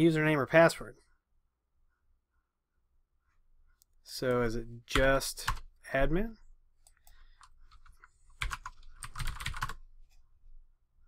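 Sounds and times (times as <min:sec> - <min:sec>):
keyboard typing: 0:06.8 - 0:09.9.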